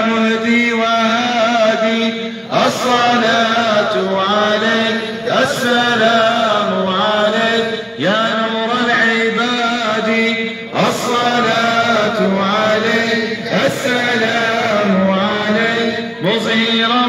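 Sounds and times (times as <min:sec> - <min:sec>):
men chanting: 0:00.0 - 0:17.0.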